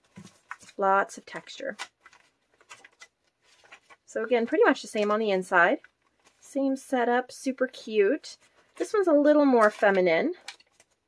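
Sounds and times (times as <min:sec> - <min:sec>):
paper pages rustling: 0:00.0 - 0:06.5, 0:08.3 - 0:11.0
soft ticks of pages turning: 0:09.6 - 0:11.0.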